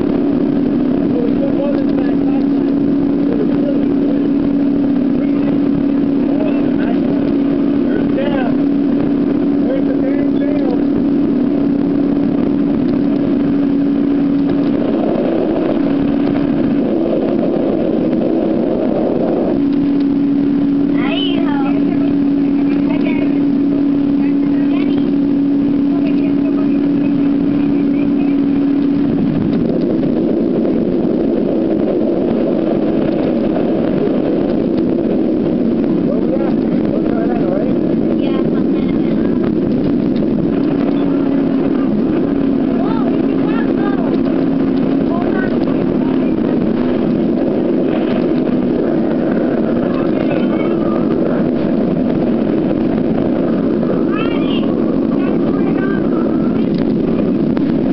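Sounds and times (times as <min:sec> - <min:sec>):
motorboat engine running: 0:00.0 - 0:57.9
water noise: 0:00.0 - 0:57.9
wind: 0:00.0 - 0:57.9.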